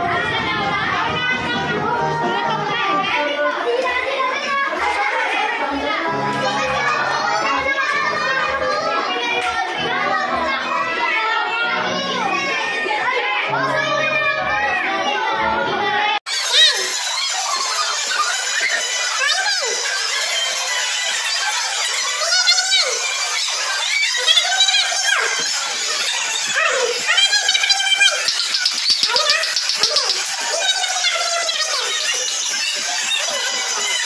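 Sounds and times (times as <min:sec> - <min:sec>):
children shouting and laughing: 0:00.0 - 0:34.0.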